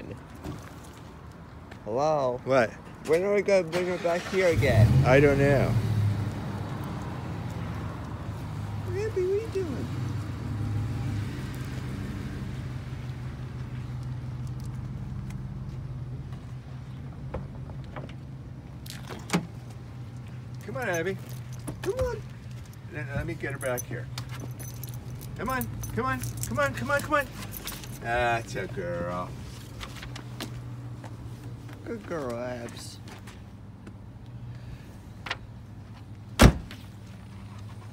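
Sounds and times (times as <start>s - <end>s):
vehicle engine humming: 4.5s - 37.9s
car rear hatch thud: 36.4s - 36.8s.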